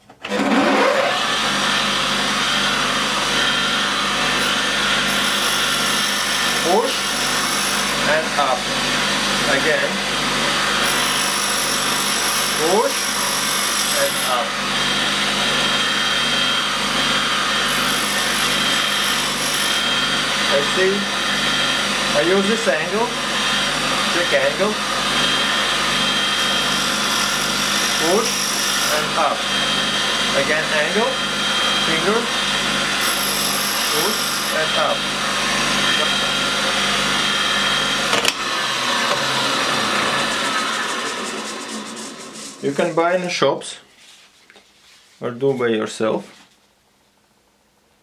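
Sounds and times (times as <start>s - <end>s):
bench grinder running: 0.2s - 43.4s.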